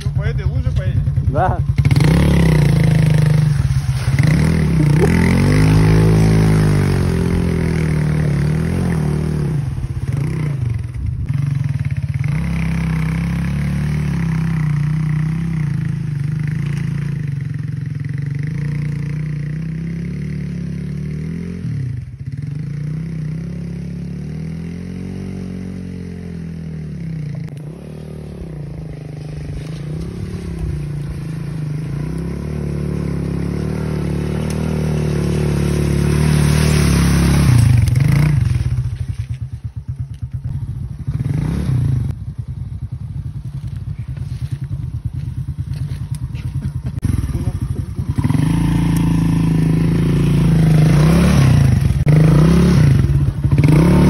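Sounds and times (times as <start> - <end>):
moped engine revving: 0.0 - 54.0.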